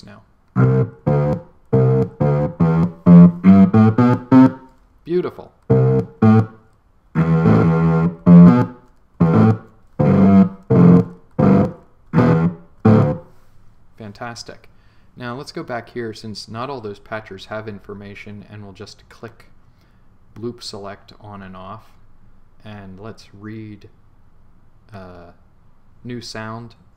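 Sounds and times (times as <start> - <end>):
sampled pitched notes: 0.0 - 4.7, 5.6 - 13.3
long held sampled sound: 0.0 - 13.3.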